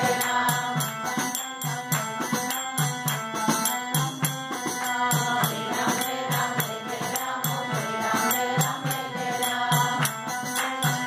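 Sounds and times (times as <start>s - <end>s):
woman singing: 0.0s - 1.3s
percussion beat: 0.0s - 11.0s.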